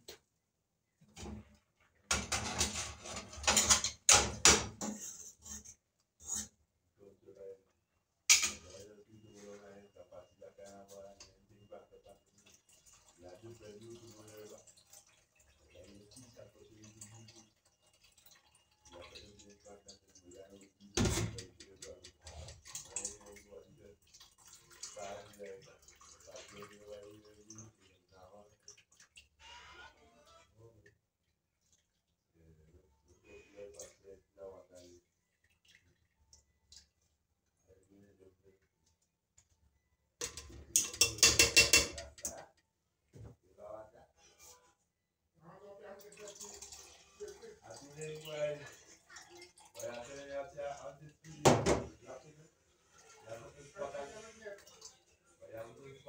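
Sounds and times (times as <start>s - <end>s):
dishes and pot handled: 2.1s - 6.6s, 8.3s - 8.8s, 40.2s - 42.4s
water running into sink: 45.9s - 56.0s.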